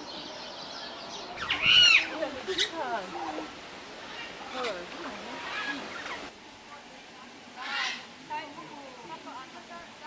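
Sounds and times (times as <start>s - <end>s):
soft low bird calls: 0.0s - 3.4s
bird squawking: 1.4s - 2.8s, 4.0s - 6.3s, 7.6s - 8.1s.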